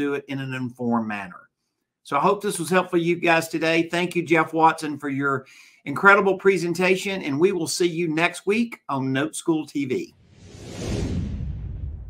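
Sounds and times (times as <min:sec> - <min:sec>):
low rumble: 0:10.2 - 0:12.0
whoosh sound effect: 0:10.2 - 0:12.0.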